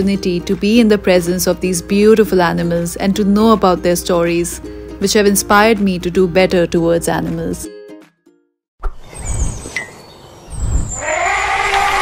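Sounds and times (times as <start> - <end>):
high bird-like chirps: 8.8 - 11.2.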